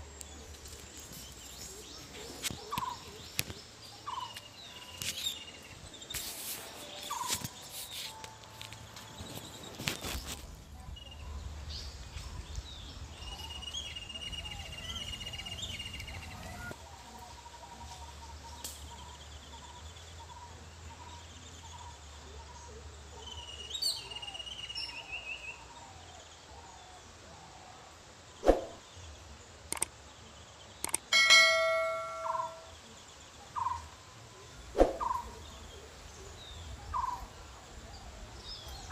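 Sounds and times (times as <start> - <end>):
birds chirping: 0.0 - 16.8, 28.4 - 38.9
ringing metallic strikes: 31.1 - 32.7.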